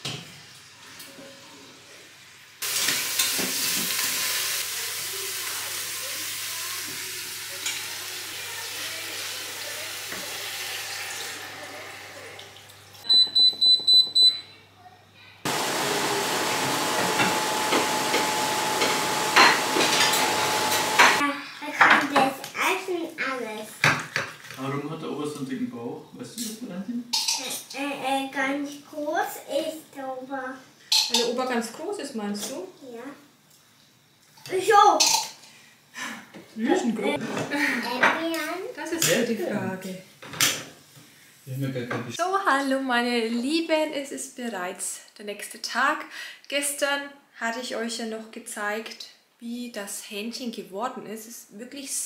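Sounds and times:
steady hiss: 1.9s - 13.0s
high control panel beeps: 13.0s - 14.4s.

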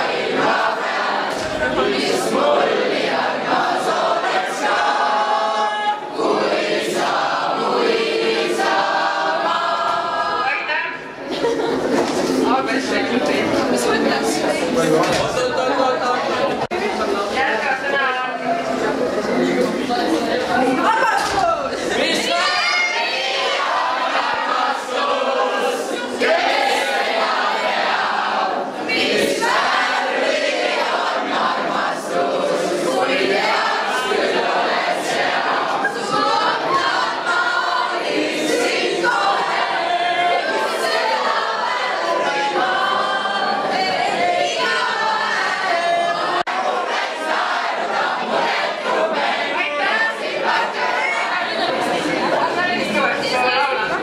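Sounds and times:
teenagers singing in chorus: 0.0s - 17.6s, 18.7s - 54.0s
crowd of young people talking: 0.0s - 54.0s.

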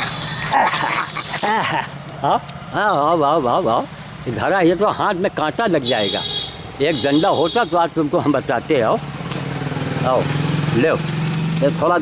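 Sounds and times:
animal barking: 0.0s - 1.8s.

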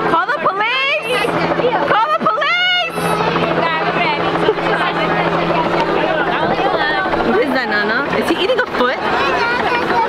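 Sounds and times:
low mechanical hum: 0.0s - 10.0s
voices talking and calling out: 0.0s - 10.0s.

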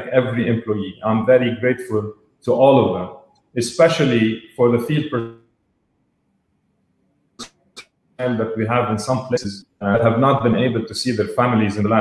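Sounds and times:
man speaking: 0.0s - 5.4s, 8.2s - 12.0s
man's sharp mouth noises: 7.4s - 8.0s.

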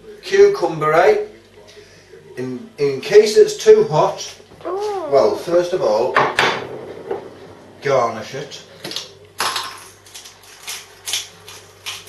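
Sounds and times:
pepper grinder crunching: 9.4s - 12.0s.

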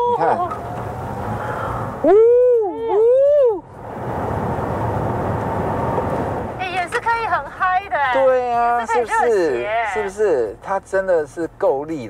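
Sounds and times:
road and wind noise in car: 0.0s - 12.0s
high-pitched two-part whoop: 2.0s - 3.6s.

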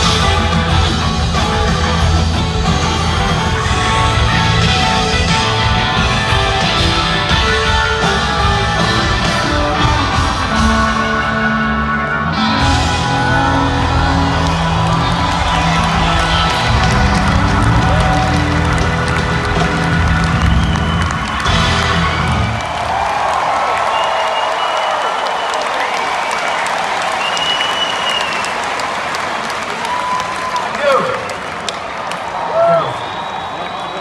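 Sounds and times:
rock band playing: 0.0s - 23.6s
crowd cheering and applauding: 0.0s - 34.0s.

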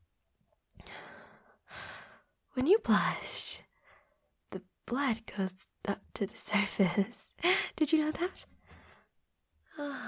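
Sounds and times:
woman breathing in: 0.8s - 2.3s, 8.6s - 9.2s.

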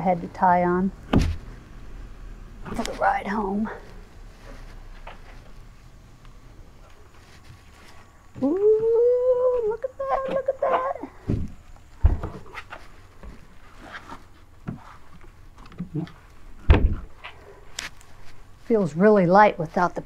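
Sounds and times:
whining voice: 8.4s - 11.2s
kayak thumping on concrete floor: 16.6s - 17.1s.

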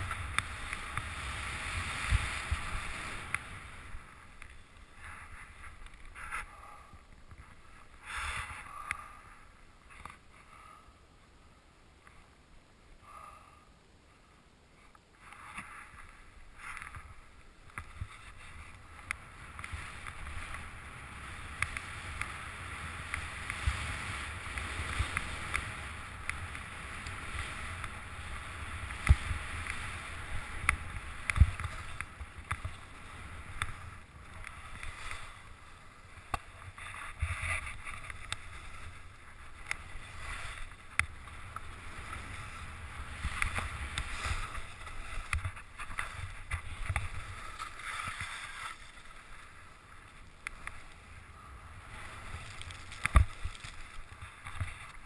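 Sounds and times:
skis swishing through snow: 0.0s - 6.6s, 15.4s - 55.0s.

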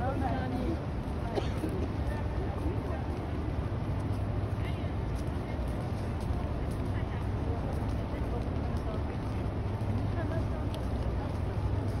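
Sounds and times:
murmur of crowd walking: 0.0s - 12.0s.

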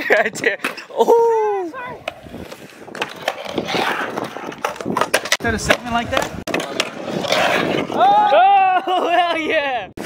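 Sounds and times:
skateboard wheels rolling on concrete: 0.0s - 10.0s
skateboard clacks: 1.9s - 7.9s.

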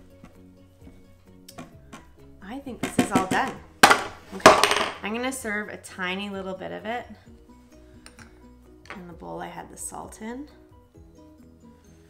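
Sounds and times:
background music of held notes: 0.0s - 12.0s.

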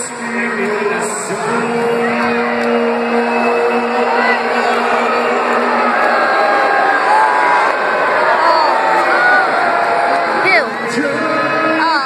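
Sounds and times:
crowd shouting: 1.3s - 12.0s.

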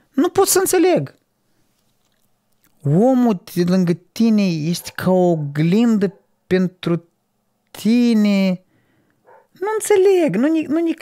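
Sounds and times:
person speaking: 0.0s - 1.3s, 2.6s - 8.7s, 9.4s - 11.0s.

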